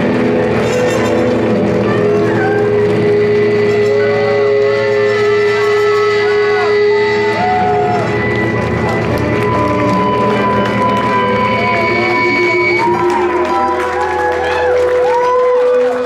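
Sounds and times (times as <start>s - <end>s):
high pitch glides: 0.0s - 14.2s
stand-up bass: 0.0s - 14.4s
saxophone long notes: 0.0s - 16.0s.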